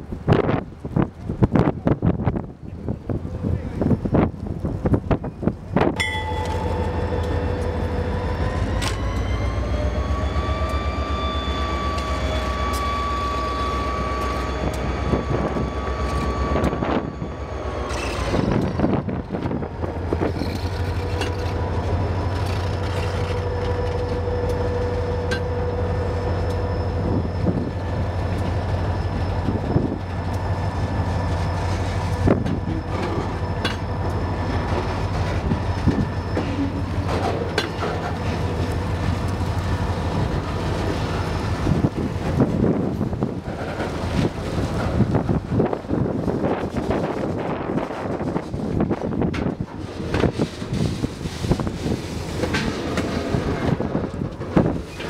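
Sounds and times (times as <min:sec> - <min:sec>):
diesel locomotive engine rumbling: 0:00.0 - 0:55.0
train wheel squeal: 0:06.0 - 0:55.0
train wheel clicks: 0:17.8 - 0:25.6.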